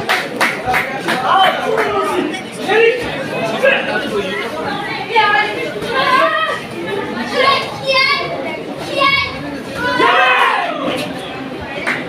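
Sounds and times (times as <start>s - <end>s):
children shouting: 5.1s - 11.2s.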